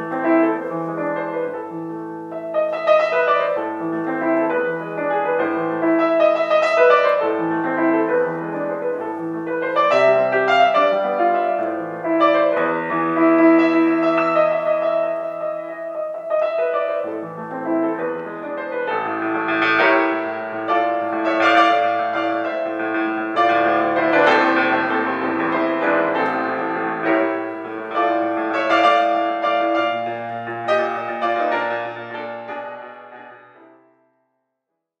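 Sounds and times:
grand piano chords: 0.0 - 34.2.

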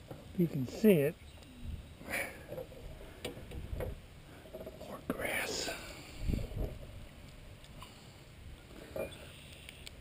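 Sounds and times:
hands and net rumbling against hull: 2.2 - 5.4, 6.2 - 7.2.

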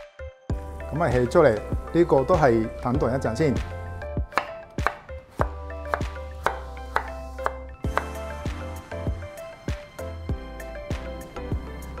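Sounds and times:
background music: 0.0 - 12.0
knife chopping on wooden board: 4.3 - 8.2.

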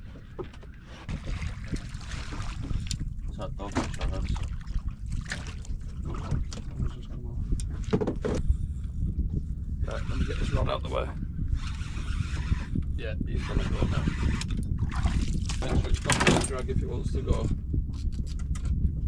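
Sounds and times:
wind rumbling on microphone: 0.0 - 19.0
muffled voices: 9.8 - 11.2, 13.0 - 14.4.

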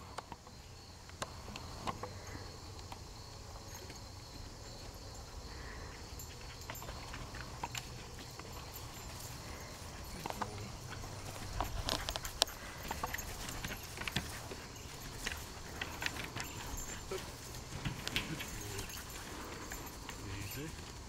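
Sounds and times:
dog paws on wooden planks: 3.6 - 21.0.

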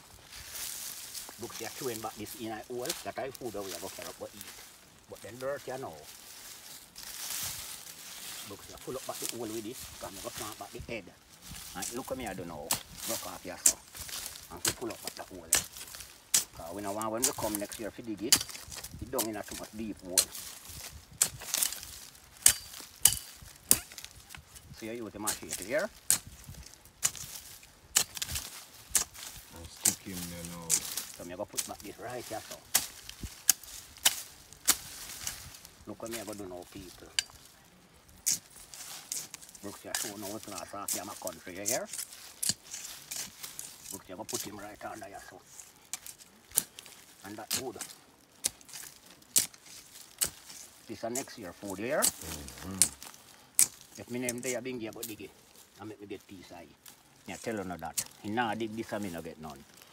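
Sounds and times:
dirt scraping: 0.0 - 59.9
machete chopping into soil: 11.6 - 24.7, 25.3 - 36.4, 38.2 - 44.5, 45.9 - 55.2.

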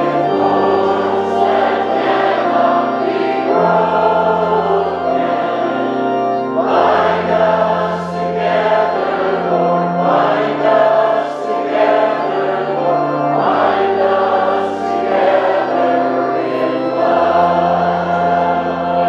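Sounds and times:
congregation singing a hymn: 0.0 - 19.0
held accompaniment chords: 0.0 - 19.0.

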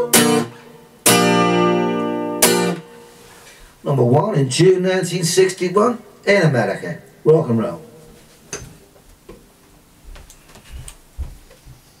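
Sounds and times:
footsteps on carpet: 8.1 - 12.0.

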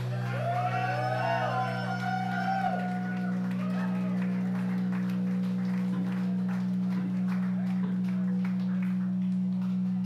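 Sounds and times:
faint crowd noise: 0.0 - 10.0
low electric amplifier drone: 0.0 - 10.0.

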